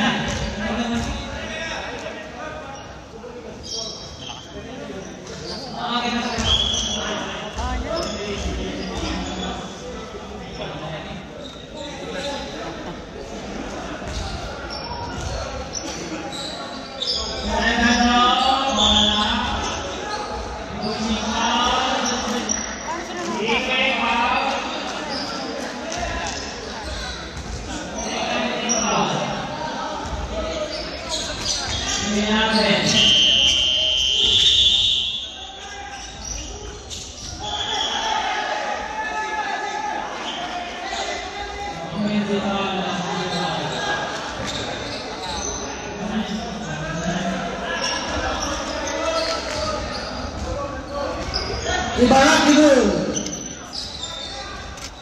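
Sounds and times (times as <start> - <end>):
people talking and calling out: 0.0 - 55.0.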